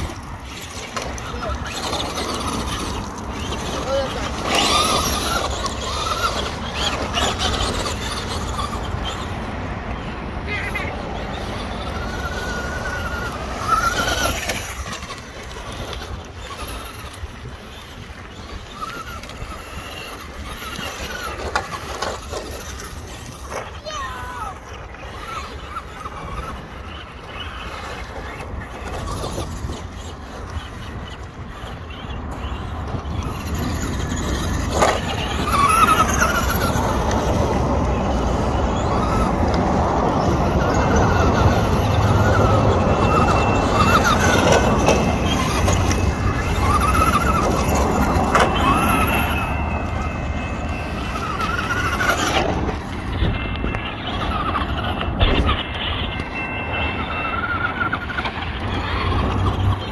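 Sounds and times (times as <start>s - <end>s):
toy car motor whining: 0.0s - 59.9s.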